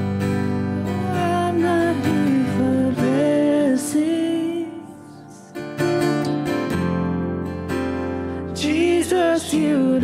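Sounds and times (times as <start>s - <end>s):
bass guitar: 0.0s - 3.7s, 5.2s - 9.3s
strummed acoustic guitar: 0.0s - 10.0s
woman singing: 0.8s - 4.9s, 8.6s - 10.0s.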